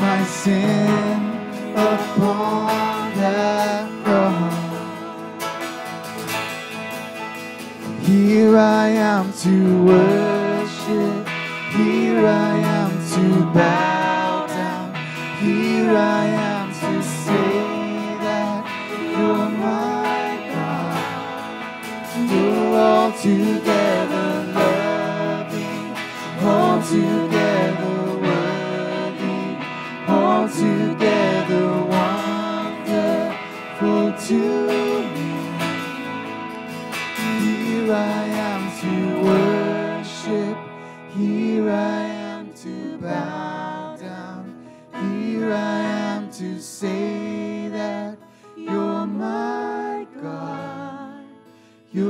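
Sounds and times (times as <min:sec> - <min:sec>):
strummed acoustic guitar: 0:00.0 - 0:48.5
electric guitar: 0:00.0 - 0:52.0
keyboard: 0:00.0 - 0:52.0
woman singing: 0:08.0 - 0:36.1, 0:37.4 - 0:51.4.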